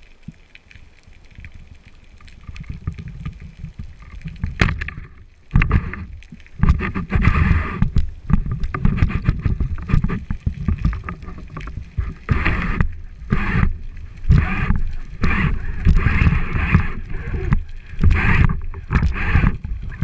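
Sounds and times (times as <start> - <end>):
underwater water rushing: 0.0 - 20.0.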